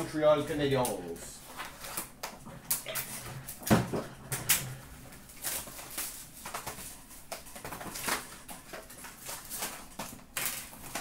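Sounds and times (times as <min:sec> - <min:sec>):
wrappers crinkling: 0:00.7 - 0:03.6, 0:04.4 - 0:11.0.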